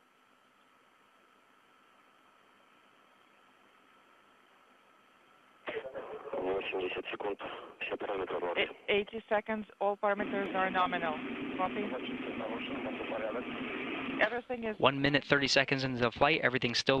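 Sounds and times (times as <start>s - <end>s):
radio link hiss: 5.6s - 17.0s
voice over radio link: 5.7s - 9.0s, 10.2s - 17.0s.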